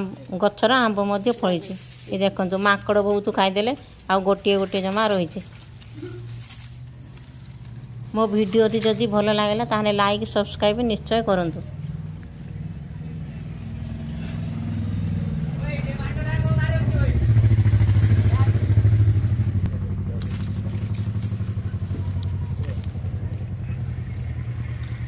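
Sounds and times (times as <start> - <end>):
vehicle engine running: 0.0 - 25.0.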